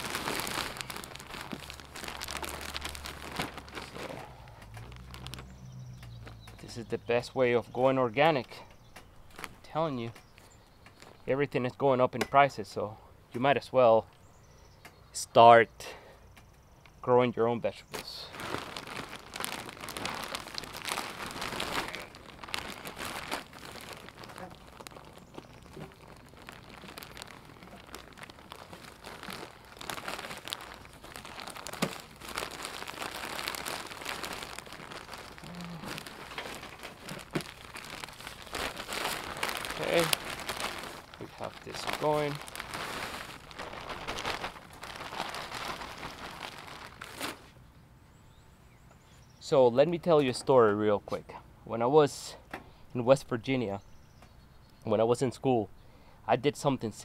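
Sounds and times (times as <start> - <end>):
plastic bag crinkling: 0.0 - 6.8, 9.2 - 9.7, 17.9 - 47.5.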